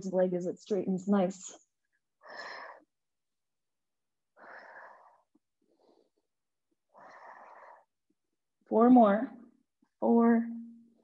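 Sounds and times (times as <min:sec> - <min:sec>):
person heavy exercise breathing: 0:02.2 - 0:02.9, 0:04.4 - 0:06.2, 0:06.9 - 0:08.0.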